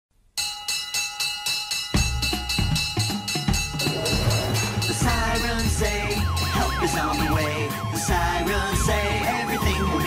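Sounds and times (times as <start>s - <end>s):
bell-like melody: 0.4s - 8.8s
drums: 0.4s - 10.0s
bass: 2.0s - 10.0s.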